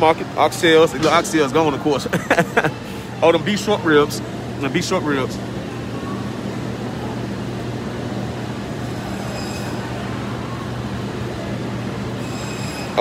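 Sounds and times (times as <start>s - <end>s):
grocery store hum: 0.0s - 13.0s.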